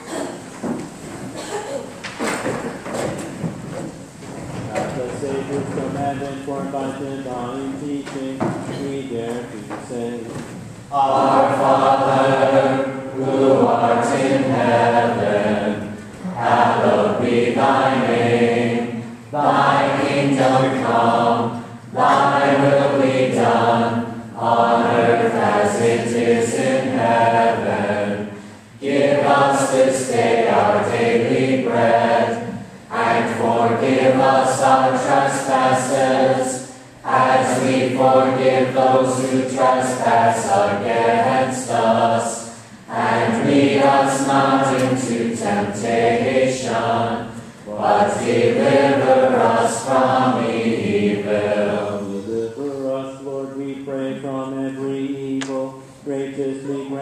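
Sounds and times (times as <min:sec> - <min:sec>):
church choir singing: 0:10.9 - 0:57.0.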